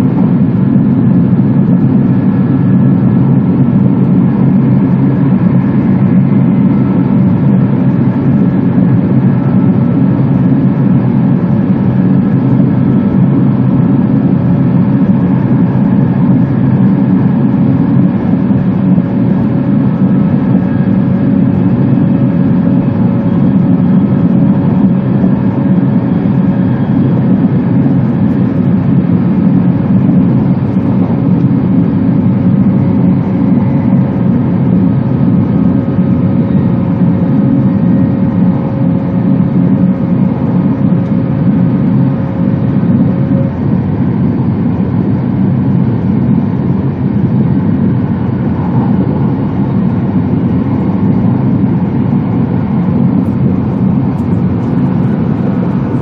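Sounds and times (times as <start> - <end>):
faint steady whines: 0.0 - 56.0
train cabin low rumble: 47.8 - 56.0.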